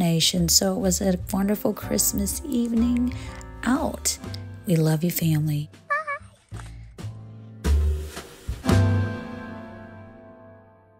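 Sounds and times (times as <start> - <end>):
child squealing: 5.9 - 6.3
music with low notes and struck beats: 7.0 - 9.3.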